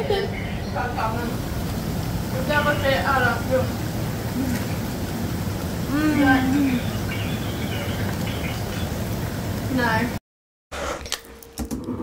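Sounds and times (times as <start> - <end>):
faint steady hum: 0.0 - 10.2.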